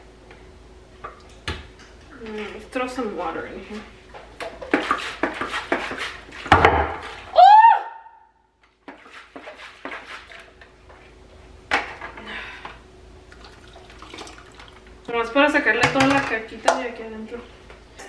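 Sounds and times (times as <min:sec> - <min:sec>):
water swilling in blender jar: 0:13.3 - 0:14.8.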